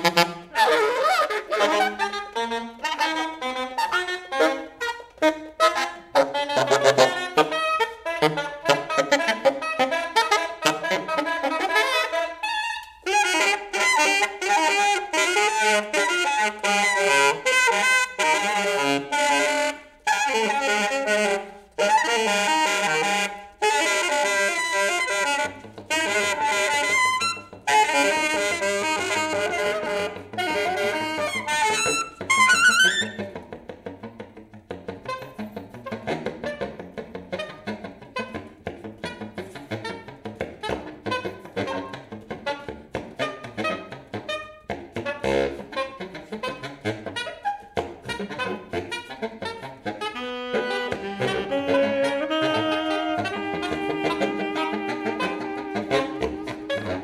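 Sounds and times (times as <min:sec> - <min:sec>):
saxophone quartet playing free jazz: 0:00.0 - 0:57.0.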